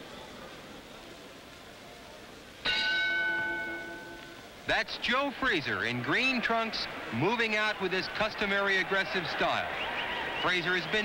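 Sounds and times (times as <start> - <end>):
boxing ring bell ringing: 2.7 - 4.2.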